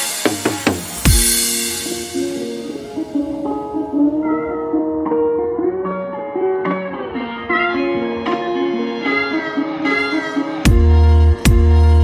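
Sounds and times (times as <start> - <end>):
melody of short pitched notes: 1.2 - 8.6
sustained tones: 1.3 - 8.8.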